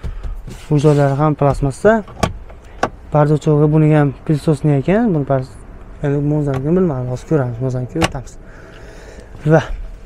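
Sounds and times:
man talking: 0.5 - 2.3, 3.1 - 8.4, 9.4 - 9.9.

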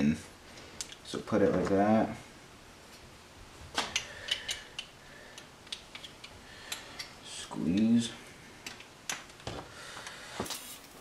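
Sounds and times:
metal parts clicking: 3.8 - 7.1.

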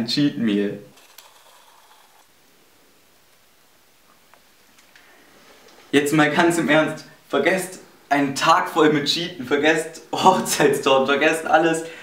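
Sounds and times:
faint click: 4.1 - 5.1.

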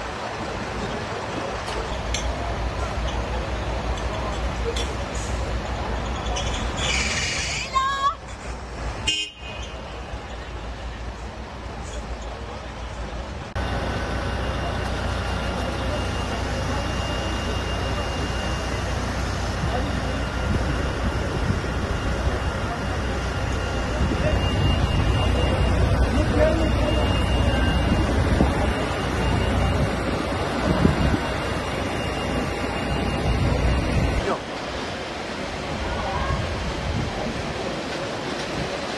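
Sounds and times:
fire engines running: 0.0 - 38.9
onlookers' voices: 9.8 - 38.9.

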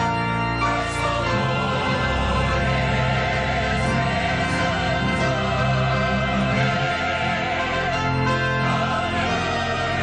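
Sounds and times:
church choir singing: 0.0 - 10.0
organ accompaniment: 0.0 - 10.0.

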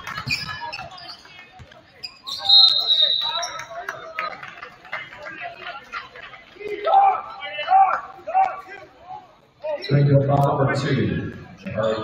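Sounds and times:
referee's whistle: 2.2 - 3.7.

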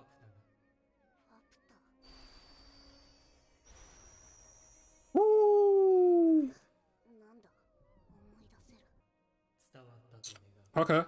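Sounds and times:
faint high-pitched gliding cries: 2.0 - 6.8.

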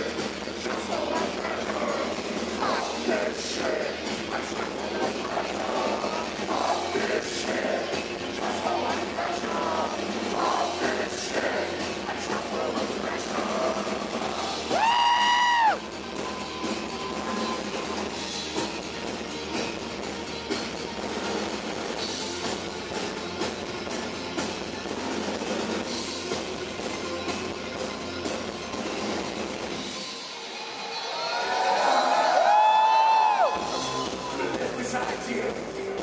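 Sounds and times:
steady drum beat: 0.0 - 29.9
live rock band: 0.0 - 31.0, 32.4 - 36.0.

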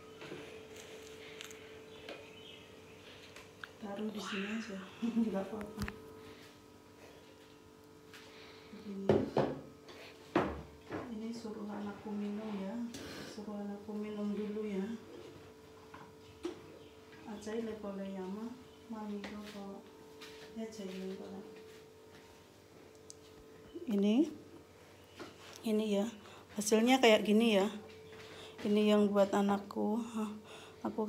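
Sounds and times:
faint steady hum: 0.0 - 31.0
person speaking: 3.9 - 6.0
ceramic bowls knocking on wooden table: 9.1 - 9.7.

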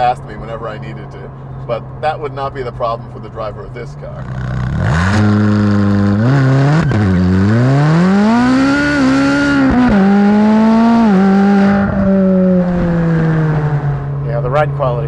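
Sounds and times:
sports car engine accelerating: 0.0 - 15.0.

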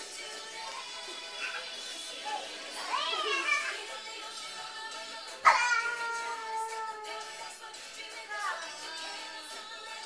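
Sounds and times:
pop music: 0.0 - 10.0
child squealing: 5.5 - 7.1.

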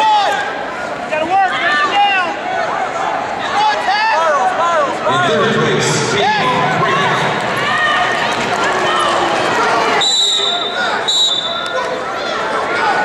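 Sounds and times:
spectators and coaches shouting: 0.0 - 13.0.

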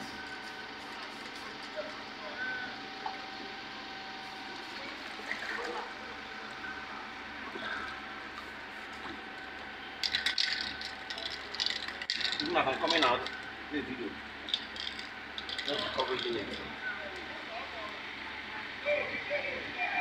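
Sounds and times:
faint hum: 0.0 - 20.0
water sloshing and splashing: 4.6 - 6.2.

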